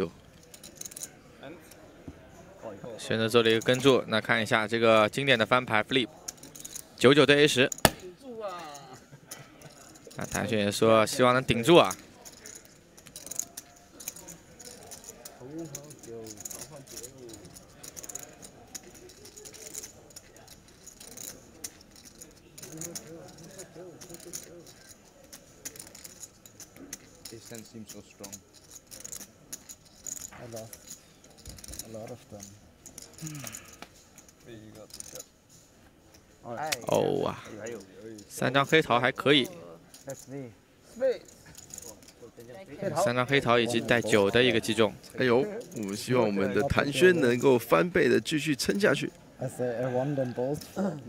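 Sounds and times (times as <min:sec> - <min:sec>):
faint chatter: 0:00.0 - 0:04.4, 0:05.5 - 0:47.8.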